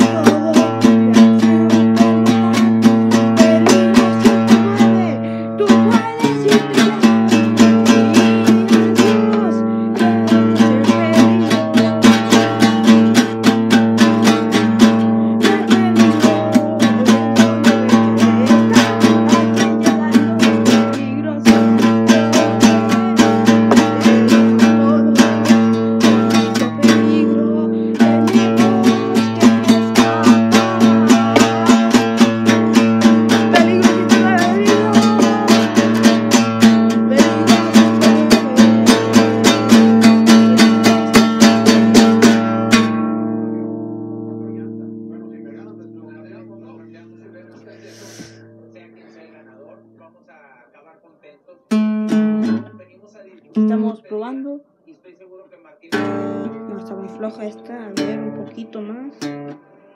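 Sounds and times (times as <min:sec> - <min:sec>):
strummed acoustic guitar: 0:00.0 - 0:50.8, 0:51.6 - 0:54.6, 0:55.8 - 0:59.9.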